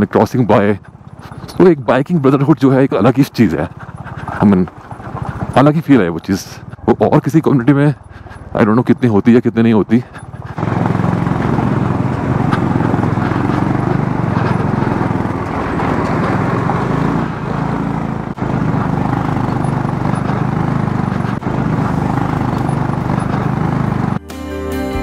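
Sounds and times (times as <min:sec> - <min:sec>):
motorcycle engine running: 0:00.0 - 0:24.2
tyres on gravel: 0:00.0 - 0:24.2.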